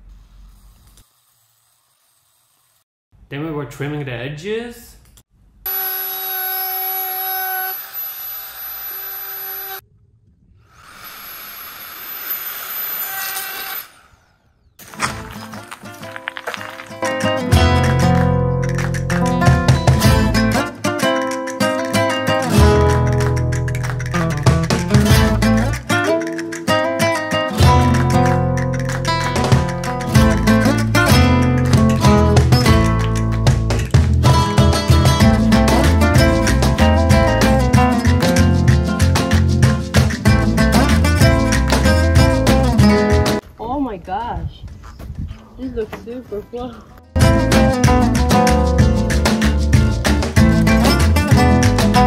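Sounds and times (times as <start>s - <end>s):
power tool whining: 5.7s - 9.8s, 11.0s - 14.3s
acoustic guitar music with beat: 14.8s - 43.4s, 46.0s - 52.0s.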